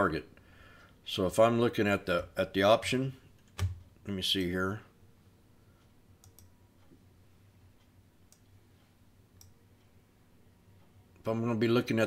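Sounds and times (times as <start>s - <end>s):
faint computer mouse clicks: 6.2s - 7.0s, 8.3s - 8.6s, 9.4s - 9.6s.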